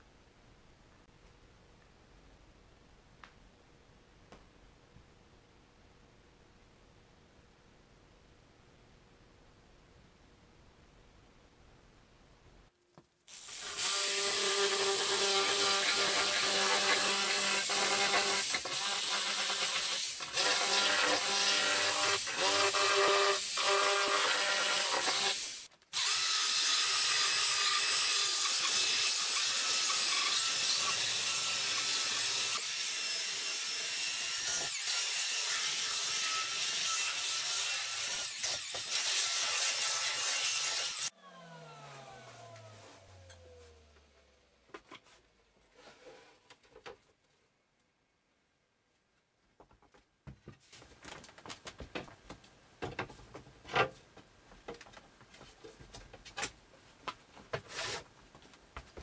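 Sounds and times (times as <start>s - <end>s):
electric saw cutting wood: 13.3s - 44.5s
power sander running: 41.2s - 44.5s.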